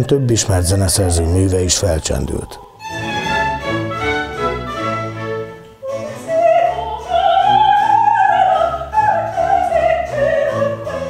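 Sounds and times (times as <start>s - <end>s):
string orchestra: 2.8s - 11.0s
operatic soprano singing: 5.8s - 11.0s.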